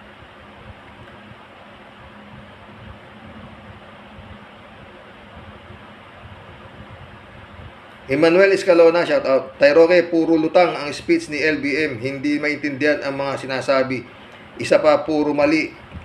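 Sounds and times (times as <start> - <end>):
faint hum: 0.0 - 16.0
low room noise hiss: 0.0 - 16.0.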